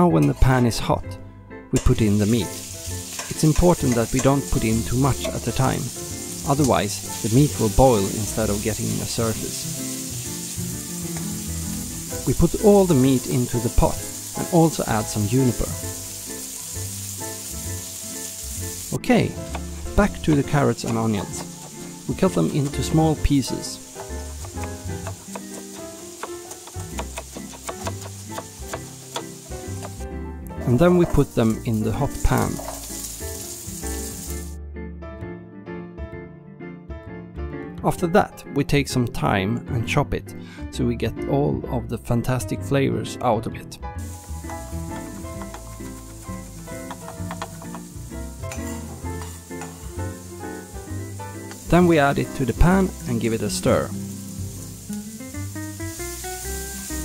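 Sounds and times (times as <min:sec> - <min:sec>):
background music: 0:00.0 - 0:57.0
vegetables sizzling in a pan: 0:02.2 - 0:30.2, 0:31.1 - 0:34.6, 0:44.0 - 0:57.0
knife chopping on wooden board: 0:24.0 - 0:30.0.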